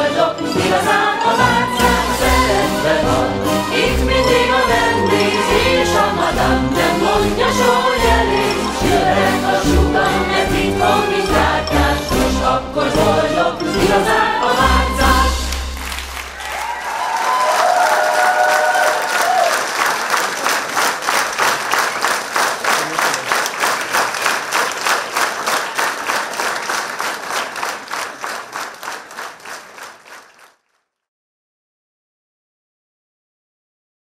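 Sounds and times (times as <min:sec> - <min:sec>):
stage musical singing and music: 0:00.0 - 0:16.2
audience clapping in rhythm: 0:00.4 - 0:30.9.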